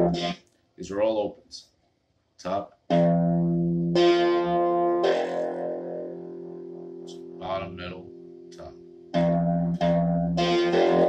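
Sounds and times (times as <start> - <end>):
guitar strings plucked: 0.0 - 0.4, 2.9 - 11.0.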